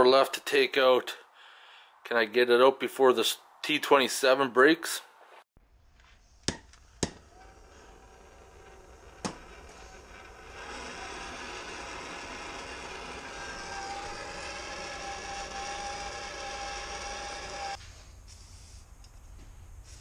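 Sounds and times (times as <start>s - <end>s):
torch flame hissing: 7.2s - 17.8s.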